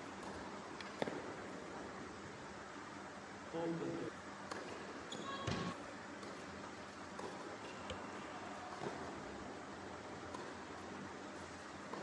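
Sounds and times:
tennis ball bouncing on hard court: 0.0s - 1.6s, 4.4s - 9.4s, 10.0s - 12.0s.

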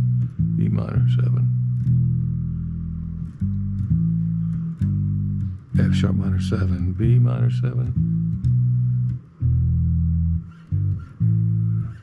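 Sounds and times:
electric bass notes: 0.0s - 12.0s.

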